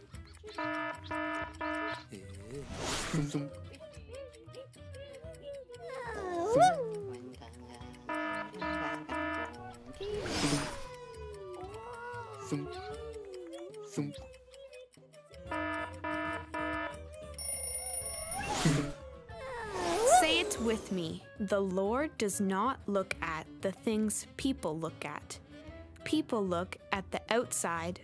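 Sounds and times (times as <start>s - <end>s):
game music: 0.5s - 3.4s, 8.0s - 10.9s, 15.5s - 19.0s
quick ringing chimes: 17.4s - 18.5s
squeaky voice sliding in pitch: 18.2s - 19.0s, 19.6s - 20.9s.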